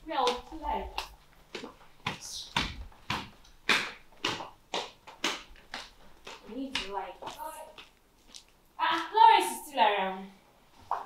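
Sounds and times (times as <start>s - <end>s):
sharp slaps: 0.2s - 8.0s.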